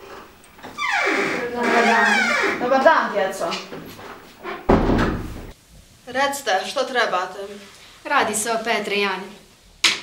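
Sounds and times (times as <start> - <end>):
door shutting with heavy thud: 4.6 - 5.6.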